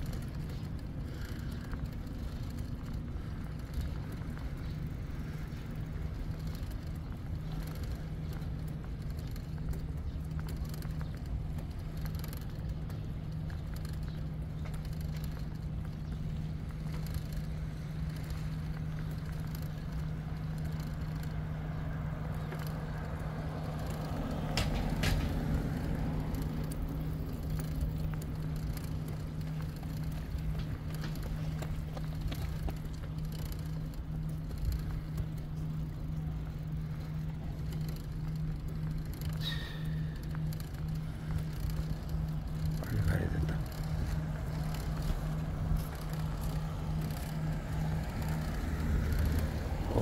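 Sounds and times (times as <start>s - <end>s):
bicycle hum and wind rumble: 0.0s - 50.0s.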